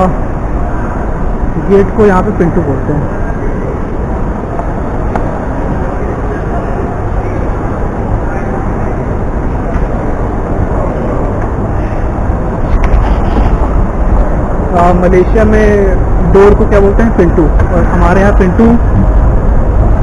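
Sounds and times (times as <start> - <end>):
low rumble: 0.0 - 20.0
terminal crowd ambience: 0.0 - 20.0.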